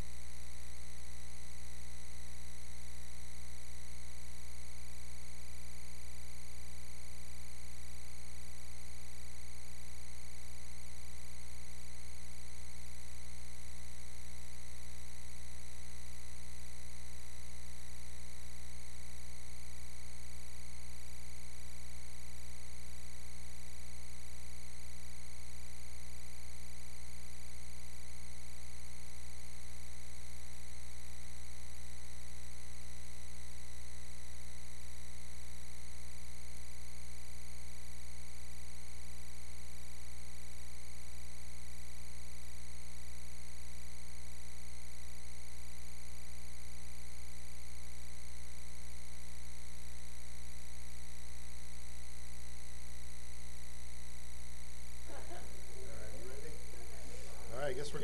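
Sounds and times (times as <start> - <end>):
buzzy electrical mains hum: 0.0 - 58.0
faint hiss: 54.9 - 58.0.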